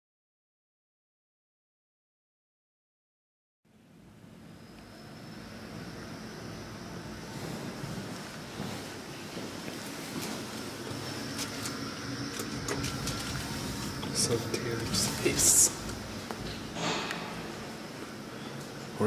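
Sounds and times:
elevator machinery humming: 0:03.7 - 0:19.0.

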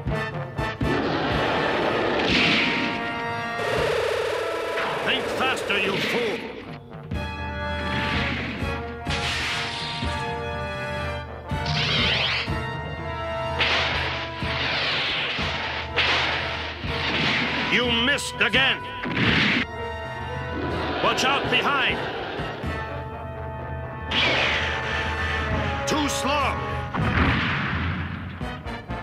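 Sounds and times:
dramatic background music: 0:00.0 - 0:29.0.

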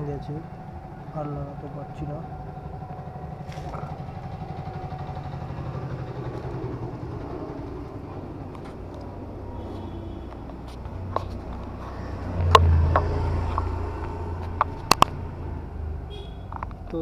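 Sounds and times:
motorcycle engine idling: 0:00.0 - 0:17.0.

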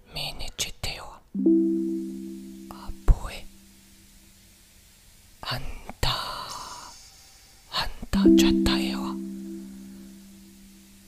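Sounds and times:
short intake of breath: 0:06.3 - 0:07.5.

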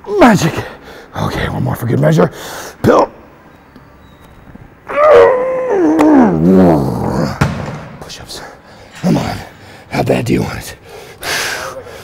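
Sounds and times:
man groaning with effort: 0:05.6 - 0:07.4.

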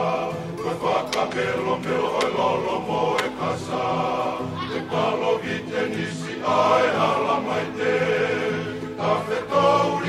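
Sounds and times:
men singing together: 0:00.0 - 0:10.0.

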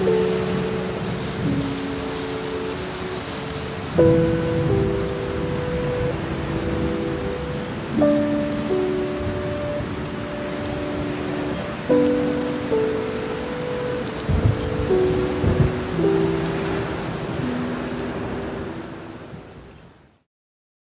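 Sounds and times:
slow sad piano chords: 0:00.0 - 0:19.6
heavy rain hiss: 0:00.0 - 0:20.1.

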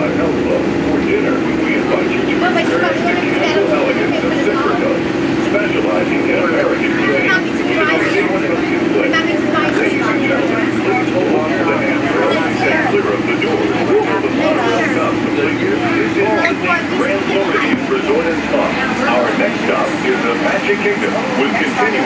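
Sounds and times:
monorail low drone: 0:00.0 - 0:22.0
passengers talking indistinctly: 0:00.0 - 0:22.0.

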